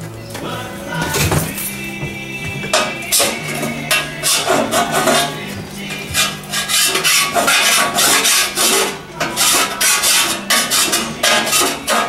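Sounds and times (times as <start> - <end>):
background music: 0.0 - 12.0
file rasping on metal: 3.9 - 12.0.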